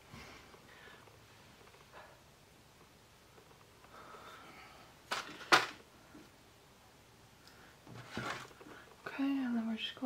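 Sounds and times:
soft rustle: 7.6 - 9.2.

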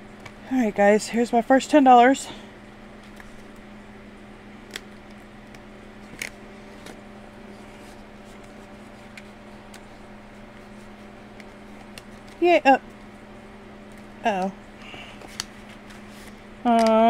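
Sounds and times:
paper crinkling: 4.6 - 12.4.

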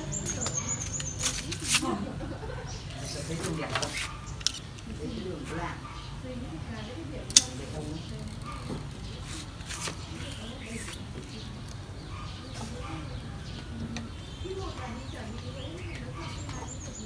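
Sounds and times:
pruning shears snipping twigs: 0.3 - 1.9, 7.3 - 7.7.

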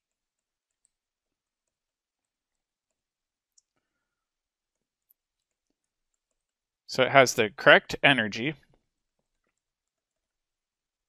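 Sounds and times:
stylus tapping tablet screen: 0.0 - 6.8, 8.6 - 11.0
person speaking: 6.9 - 8.7.

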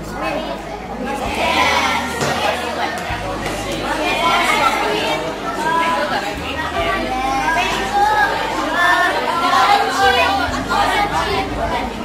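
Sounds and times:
classroom chatter: 0.0 - 12.0.

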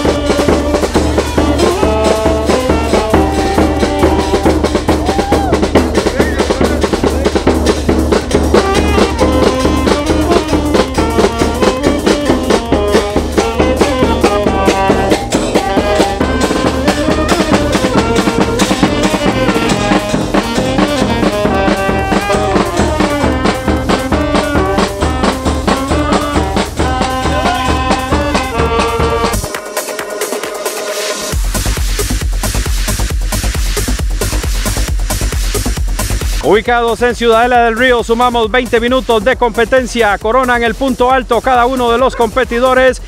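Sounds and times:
saxophone melody: 0.0 - 5.4, 8.2 - 29.9
bass drum and snare beat: 0.0 - 43.0.

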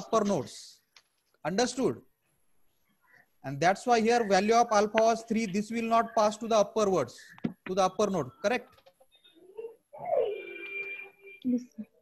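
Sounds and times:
bird cooing: 9.4 - 10.8.

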